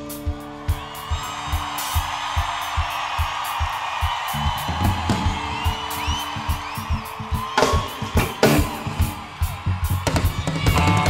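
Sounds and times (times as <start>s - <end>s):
drum and cymbal hits: 0.0s - 11.0s
rock band playing: 0.0s - 11.0s.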